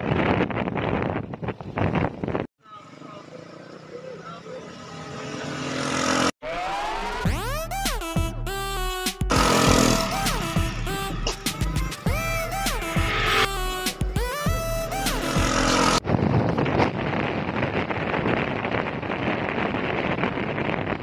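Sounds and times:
wind rushing over microphone: 0.0s - 2.5s, 16.0s - 21.0s
music with sliding melody: 7.4s - 16.0s.

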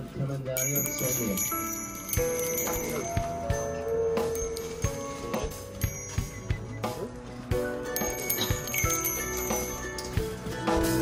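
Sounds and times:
background music: 0.0s - 11.0s
small brass bells clinking: 0.6s - 10.6s.

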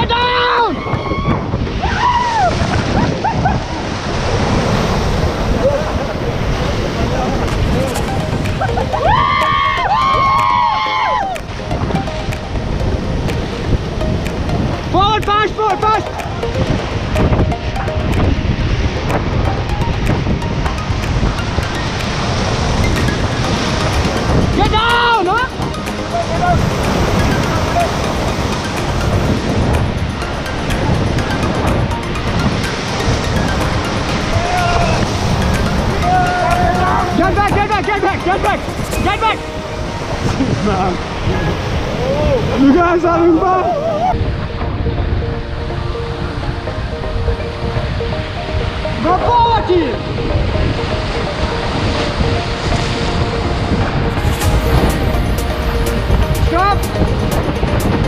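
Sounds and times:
people shouting: 0.0s - 2.6s, 8.9s - 11.4s, 34.3s - 35.1s, 36.0s - 37.4s
whitewater rushing: 0.0s - 58.0s.

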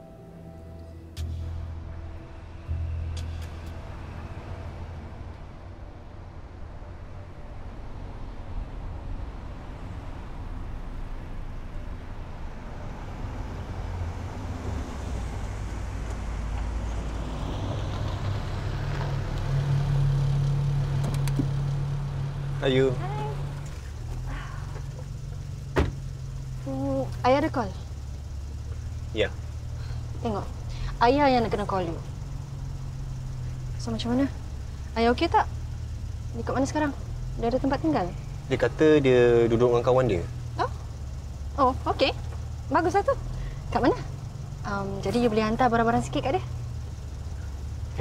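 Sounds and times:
low rumble of cars: 0.0s - 48.0s
car door slamming: 25.6s - 26.2s.

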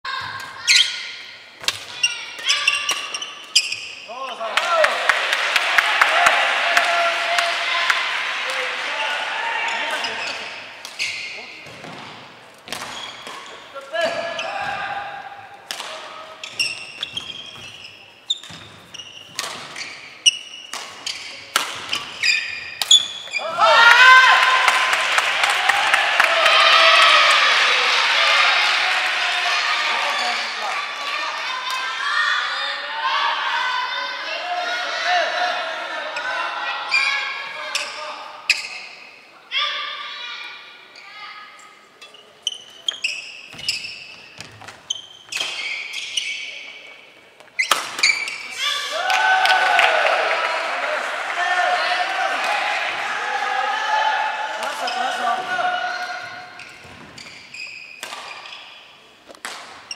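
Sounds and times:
shoe squeak on wooden floor: 2.0s - 4.1s, 10.0s - 11.6s, 12.9s - 13.6s, 16.4s - 23.5s, 37.8s - 39.0s, 42.0s - 46.8s, 47.5s - 48.5s, 56.5s - 58.8s
group shouting and cheering: 4.2s - 10.4s, 23.4s - 37.5s, 48.6s - 56.4s
racket hitting shuttlecock: 10.8s - 13.6s, 15.6s - 17.8s, 18.4s - 23.4s, 44.4s - 46.0s, 47.4s - 48.5s, 56.6s - 59.9s
racket striking shuttlecock: 11.6s - 13.6s, 19.2s - 19.9s, 20.6s - 22.2s, 58.0s - 58.6s, 59.3s - 59.9s.

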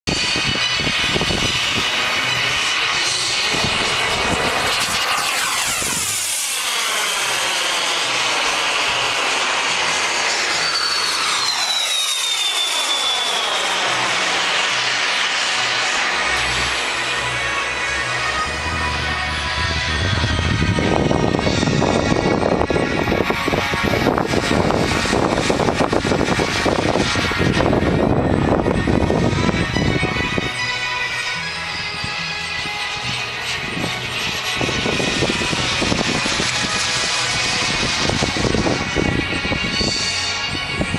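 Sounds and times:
loud rough noise: 0.0s - 40.9s
model jet engine whine passing: 0.0s - 40.9s.

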